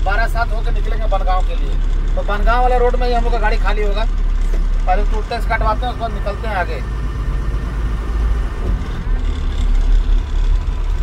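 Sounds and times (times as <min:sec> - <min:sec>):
diesel engine low rumble: 0:00.0 - 0:11.0.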